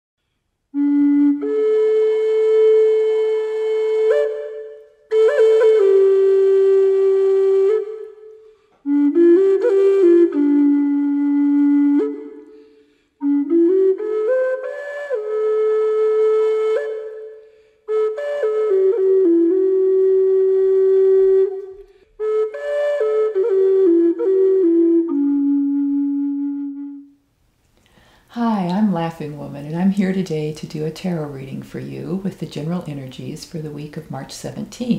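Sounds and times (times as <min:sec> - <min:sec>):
flute holding long note: 0:00.7 - 0:27.1.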